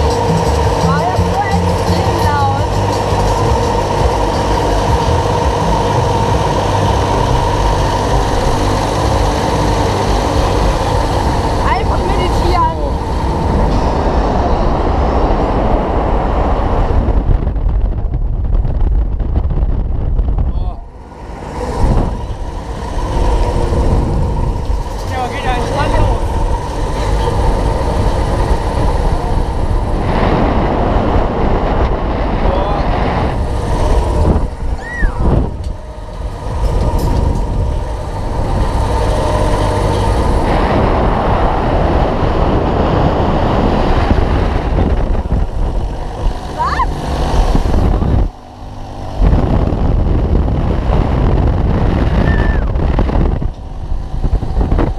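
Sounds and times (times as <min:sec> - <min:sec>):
mechanical drone of fairground ride: 0:00.0 - 0:54.9
voices: 0:00.4 - 0:05.9, 0:10.7 - 0:14.8, 0:24.9 - 0:29.5, 0:46.0 - 0:48.3.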